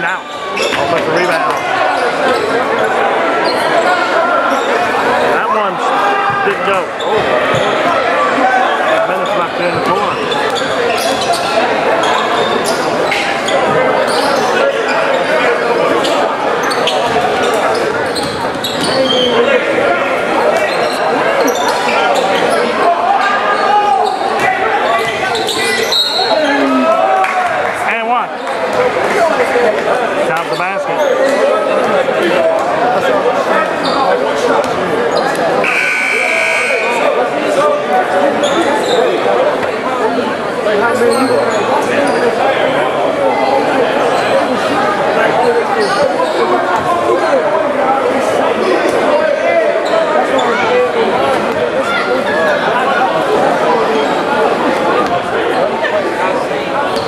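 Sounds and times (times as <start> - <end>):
crowd chatter: 0.0 - 57.0
scoreboard buzzer: 35.6 - 37.0.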